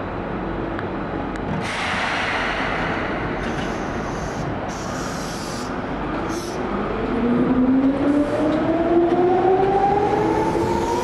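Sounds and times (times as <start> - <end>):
train low rumble: 0.0 - 11.0
higher train hiss: 1.6 - 6.6
loud train hiss: 1.6 - 6.7.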